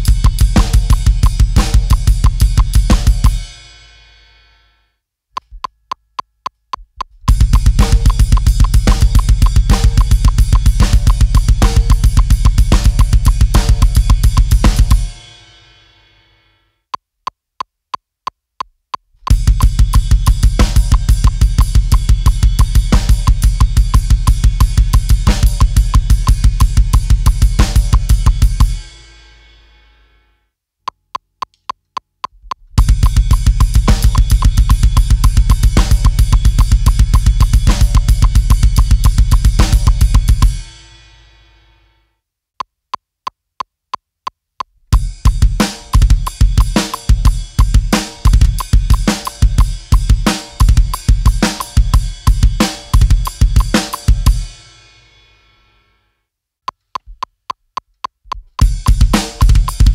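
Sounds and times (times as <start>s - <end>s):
drum kit playing metal beat: 0.0s - 4.1s, 7.2s - 15.8s, 19.3s - 29.2s, 32.5s - 41.2s, 44.9s - 55.0s, 58.3s - 59.9s
metronome clicks: 0.2s - 3.2s, 5.3s - 15.1s, 16.9s - 19.8s, 30.8s - 40.4s, 45.3s - 54.1s, 56.6s - 59.9s.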